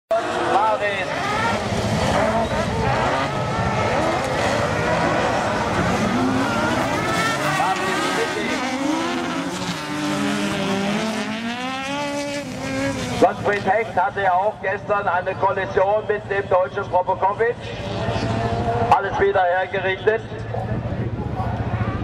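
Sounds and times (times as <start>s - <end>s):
race car engines revving: 0.1s - 22.0s.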